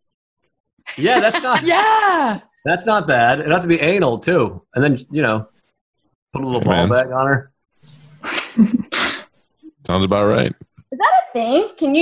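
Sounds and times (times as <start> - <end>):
person laughing: 0.9 - 2.2, 6.6 - 7.0, 8.2 - 9.1.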